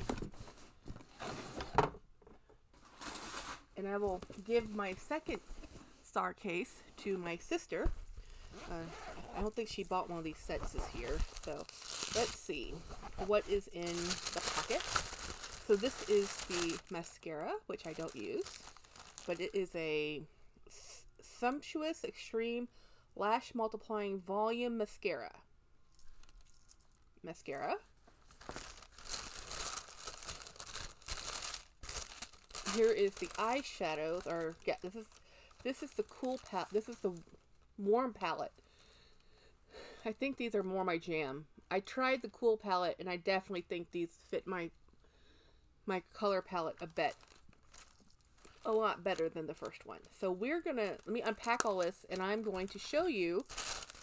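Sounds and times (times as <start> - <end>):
makeup case rustling scrape: 2.8 - 3.8
tissue paper crinkling: 2.8 - 3.8, 8.3 - 17.0, 17.8 - 19.6, 28.1 - 37.2, 46.9 - 49.7, 50.8 - 54.0.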